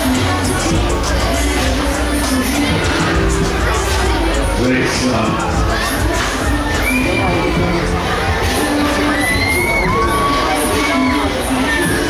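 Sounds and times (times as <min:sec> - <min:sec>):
crowd: 0:00.0 - 0:12.0
loud ride music: 0:00.0 - 0:12.0
riders screaming and shouting: 0:06.5 - 0:07.8, 0:08.5 - 0:12.0.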